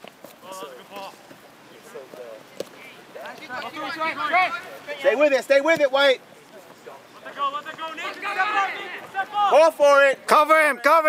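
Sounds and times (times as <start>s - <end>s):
voices calling out: 0.3s - 11.0s.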